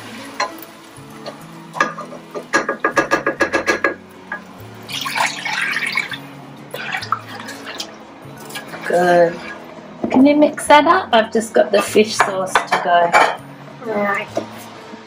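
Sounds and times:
quiet background music: 0.0 - 15.0
ladle stirring pot: 0.1 - 9.8
liquid pouring and splashing: 4.6 - 9.7.

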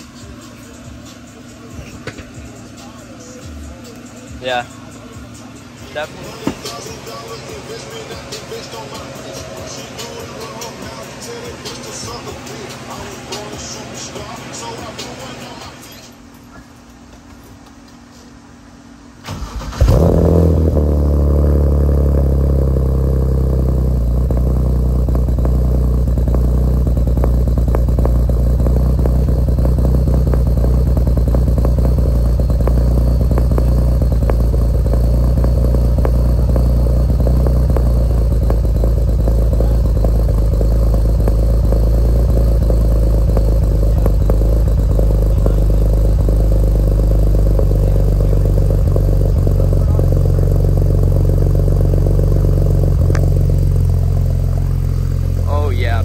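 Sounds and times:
car engine starting and idling: 0.0 - 56.0.

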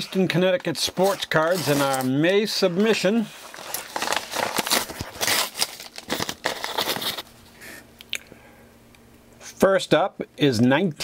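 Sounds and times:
paper envelope rustling and crinkling: 0.0 - 7.3.

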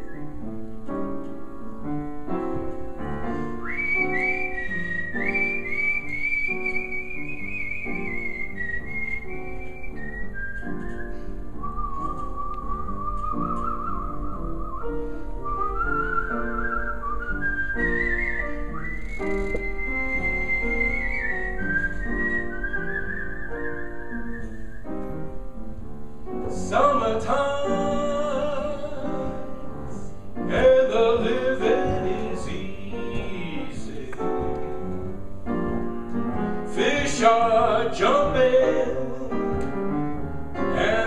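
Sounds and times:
person whistling a melody: 0.0 - 0.5, 3.3 - 25.3, 26.6 - 34.4
instrumental accompaniment: 0.0 - 41.0.

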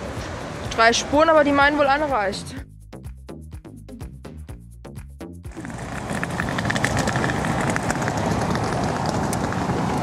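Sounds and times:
traffic and street noise: 0.0 - 2.7, 5.5 - 10.0
background music with beat: 0.0 - 5.6.

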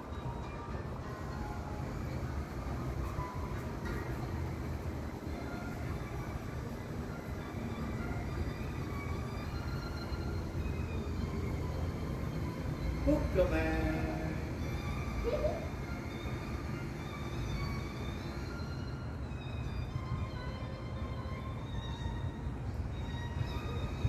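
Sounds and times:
faint music: 0.0 - 24.0.

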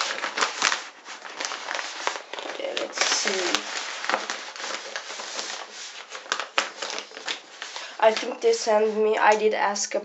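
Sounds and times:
paper wrapping rustling: 0.0 - 9.5.

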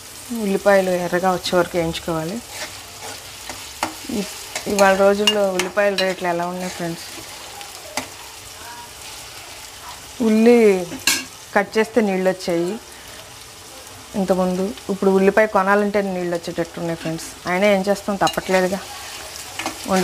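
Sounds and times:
onions sizzling in oil: 0.0 - 20.0.

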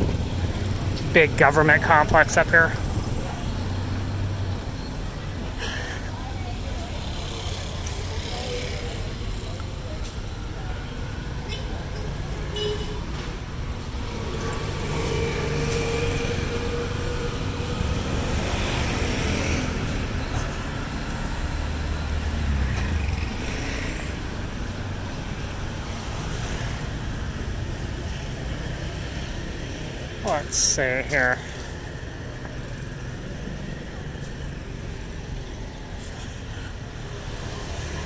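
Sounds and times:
vehicles passing on road: 0.0 - 38.0.

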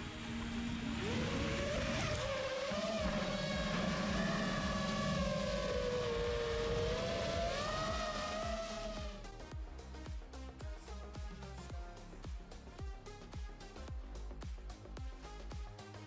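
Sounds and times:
model airplane motor whining: 0.0 - 9.3.

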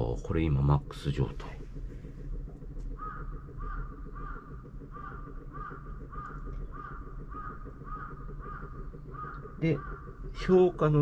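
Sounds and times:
low background hum: 0.0 - 11.0
bird calling: 2.9 - 10.7.

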